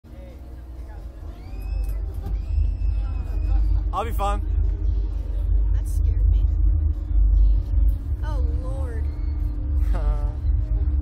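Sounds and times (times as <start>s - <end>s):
faint voices: 0.1s - 11.0s
low rumble: 0.1s - 11.0s.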